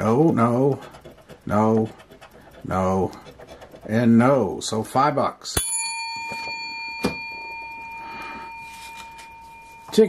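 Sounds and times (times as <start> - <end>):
bell-like metallic ring: 5.6 - 10.0.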